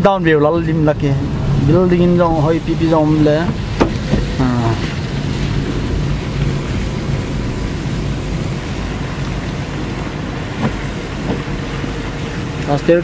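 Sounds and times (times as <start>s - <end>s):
car road and engine noise: 0.0s - 13.0s
rain on a car: 0.0s - 13.0s.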